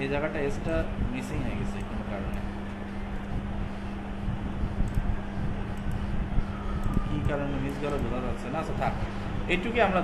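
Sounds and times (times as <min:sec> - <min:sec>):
low even hum: 0:00.0 - 0:10.0.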